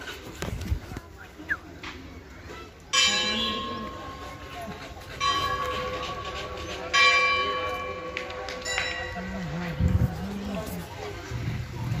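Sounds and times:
temple bell ringing: 0:02.9 - 0:04.5, 0:05.2 - 0:09.6.

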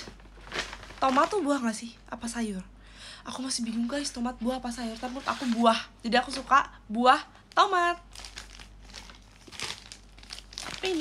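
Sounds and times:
packaging crinkling: 0:00.0 - 0:01.6, 0:07.6 - 0:11.0.

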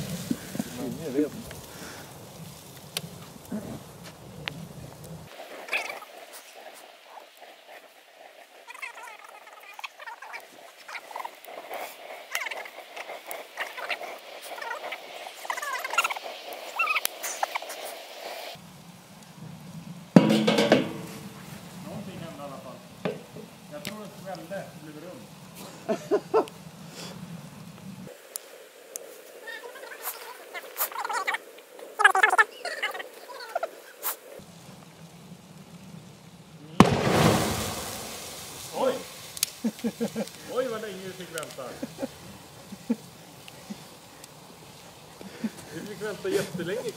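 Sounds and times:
fire crackling and popping: 0:00.0 - 0:46.9
gas bottle bursting bang: 0:20.2 - 0:21.4, 0:36.8 - 0:38.6.

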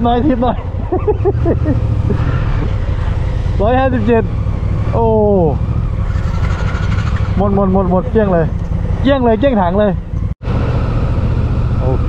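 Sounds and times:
motorcycle road noise: 0:00.0 - 0:12.0.

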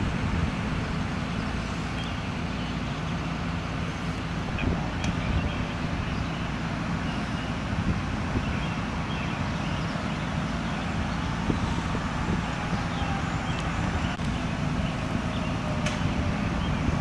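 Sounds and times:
vehicle engines idling: 0:00.0 - 0:17.0.

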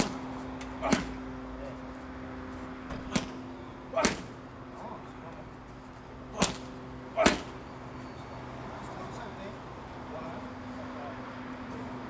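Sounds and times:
boxing glove punching pad: 0:00.0 - 0:01.2, 0:02.9 - 0:04.4, 0:06.4 - 0:07.6.

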